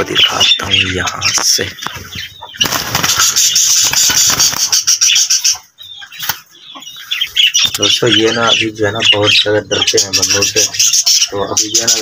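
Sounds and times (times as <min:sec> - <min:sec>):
parrot wings flapping: 0:02.6 - 0:04.9.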